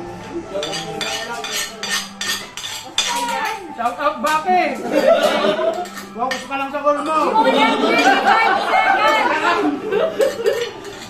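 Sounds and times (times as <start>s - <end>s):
cutlery scraping and clinking on plate: 0.6s - 7.3s, 10.2s - 11.0s.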